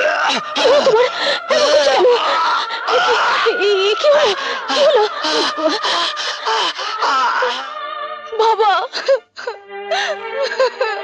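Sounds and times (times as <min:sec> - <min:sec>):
person wailing and moaning: 0:00.0 - 0:07.8.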